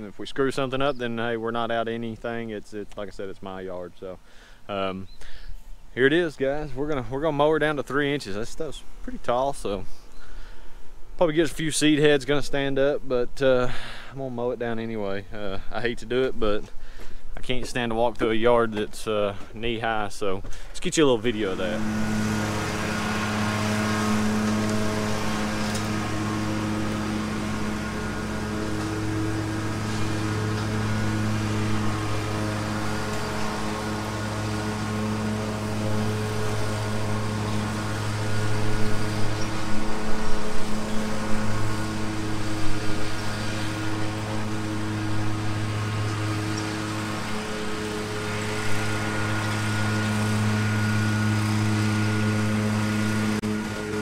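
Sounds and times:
lawn mower engine running: 13.5 - 54.0.

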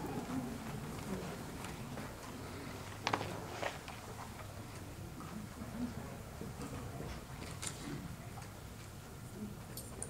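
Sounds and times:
quiet room hum: 0.0 - 10.0.

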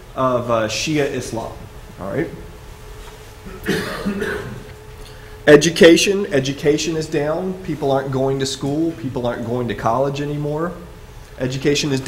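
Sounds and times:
man coughing: 3.5 - 4.7.

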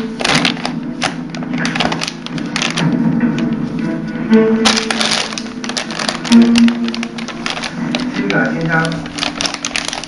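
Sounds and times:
plastic bag crackling: 0.0 - 3.8, 4.4 - 10.0.

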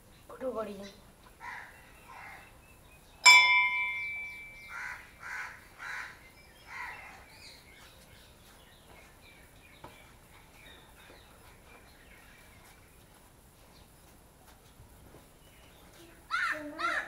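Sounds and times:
crows cawing: 1.4 - 2.4, 4.6 - 7.2, 16.3 - 17.0
temple bell ringing: 3.2 - 4.6.

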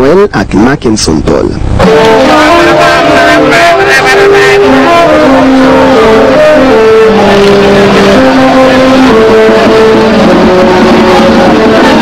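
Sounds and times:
music with long held notes: 1.7 - 12.0.

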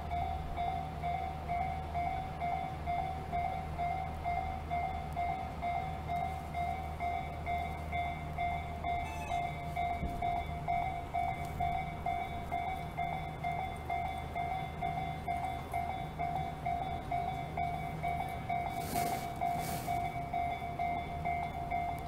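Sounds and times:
level crossing warning bell: 0.0 - 22.0.

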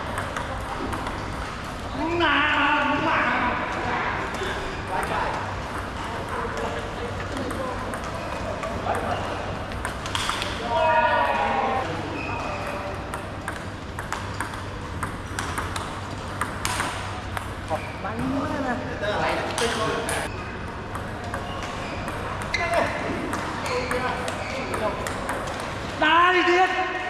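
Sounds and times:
table tennis ball clicking: 0.1 - 1.3, 13.1 - 17.6, 23.3 - 25.8.

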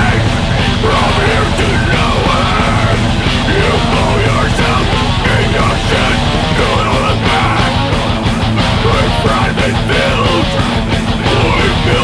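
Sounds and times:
distorted guitars: 0.0 - 12.0
drums: 0.0 - 12.0
harsh shouted vocals: 0.0 - 12.0.

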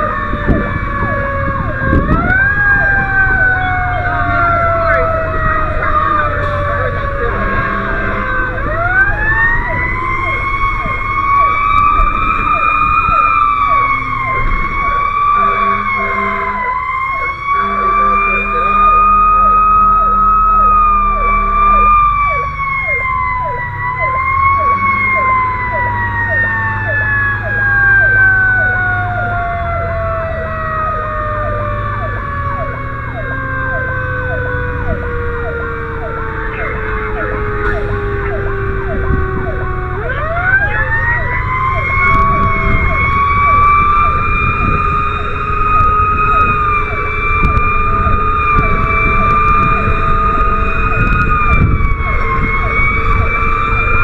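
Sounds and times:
mechanical siren wailing: 0.0 - 54.0
truck engine rumble: 0.0 - 54.0
air horn blasts: 5.8 - 8.6, 15.3 - 16.8, 17.4 - 22.1, 24.6 - 25.3, 41.9 - 44.8, 45.8 - 53.8.

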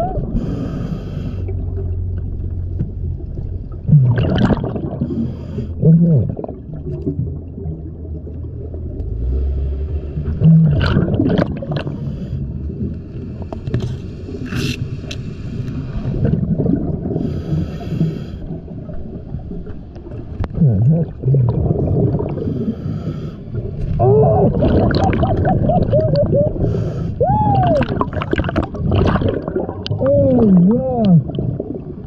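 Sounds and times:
gurgling bubbles: 0.0 - 15.0, 15.8 - 32.0
regulator hissing inhale: 0.4 - 1.5, 13.2 - 15.9, 17.2 - 18.6, 22.4 - 23.6, 26.6 - 27.2.

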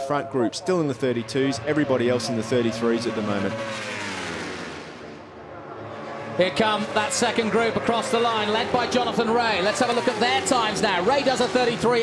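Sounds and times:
racing motorcycle engines passing: 0.0 - 12.0.

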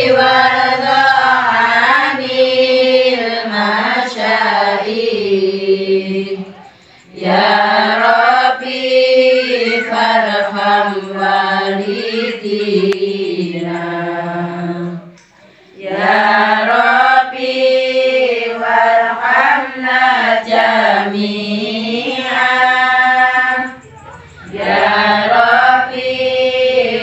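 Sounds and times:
women chanting in unison: 0.0 - 27.0.

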